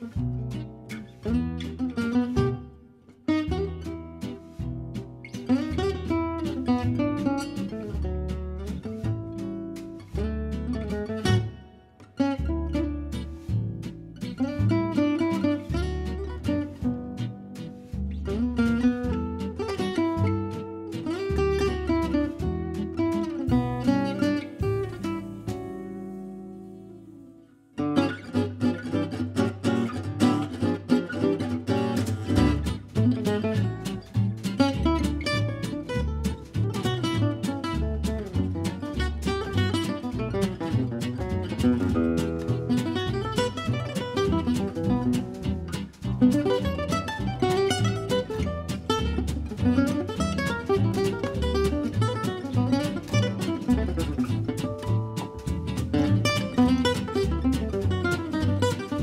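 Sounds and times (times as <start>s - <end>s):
double bass notes: 0.0s - 59.0s
guitars playing jazz lines: 0.0s - 59.0s.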